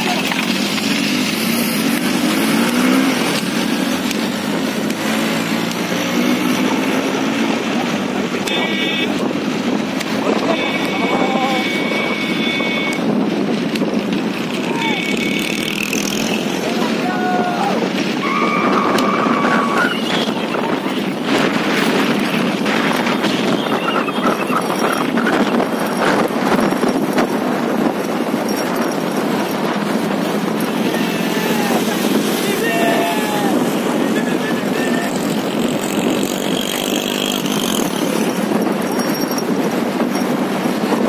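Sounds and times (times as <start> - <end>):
wind rush: 0.0 - 8.4, 9.0 - 41.0
motorcycle engine running: 0.0 - 41.0
high steady horn tone: 8.4 - 9.3, 10.3 - 13.2, 14.8 - 16.2, 18.2 - 21.1
galloping horses: 10.0 - 41.0
men shouting: 14.6 - 15.5, 16.5 - 20.8, 30.6 - 35.5.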